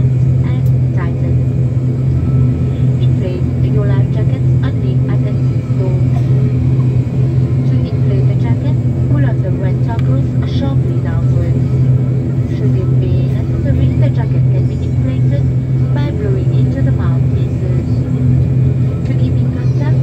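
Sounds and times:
turboprop engine droning: 0.0s - 20.0s
people's voices: 3.0s - 18.3s.

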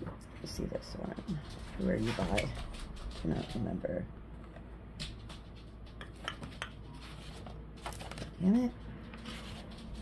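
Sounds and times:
paper rustling: 6.4s - 10.0s.

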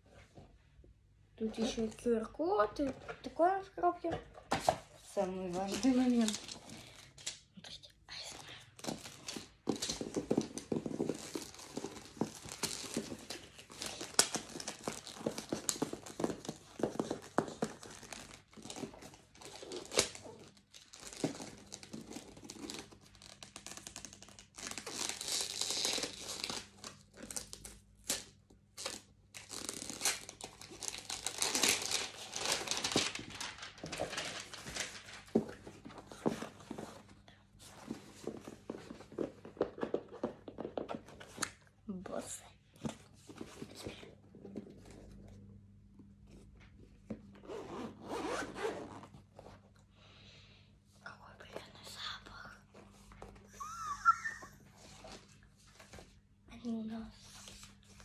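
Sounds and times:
packaging crinkling and tearing: 5.4s - 7.4s, 8.8s - 36.4s.

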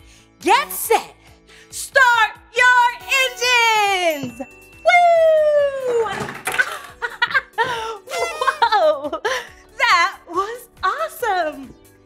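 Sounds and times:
woman's excited falling woo: 4.8s - 6.3s
woman laughing: 6.5s - 9.5s.

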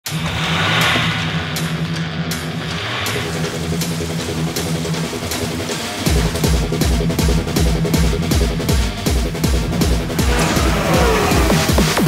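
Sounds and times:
music with pulsing bass line: 0.0s - 12.0s
car engine revving: 9.0s - 12.0s.

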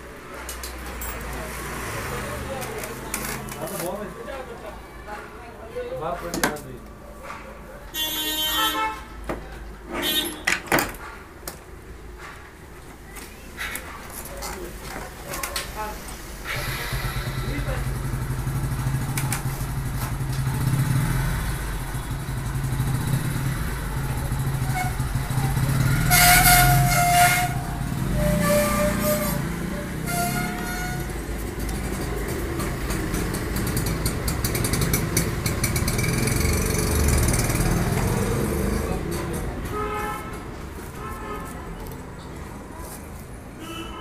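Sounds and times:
car horn blasts: 8.0s - 9.1s, 10.0s - 10.5s, 43.6s - 44.0s.

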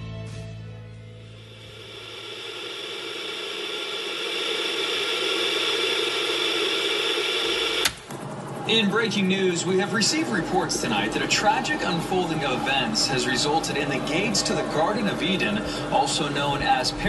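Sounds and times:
television static hiss: 1.3s - 8.0s
newsreader speaking: 8.7s - 17.0s.

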